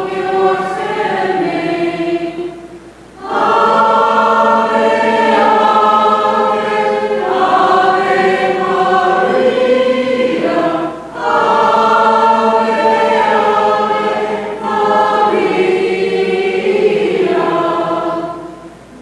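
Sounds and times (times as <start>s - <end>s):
group singing a hymn: 0.0s - 19.0s.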